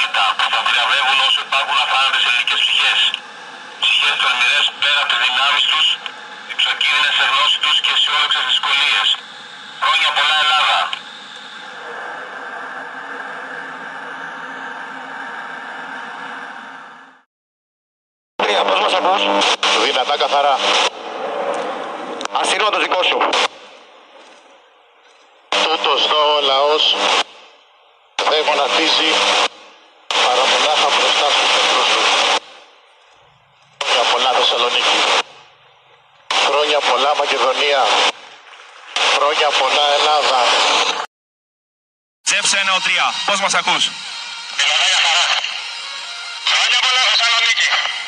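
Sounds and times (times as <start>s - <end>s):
loud outdoor voices: 42.3s - 48.0s.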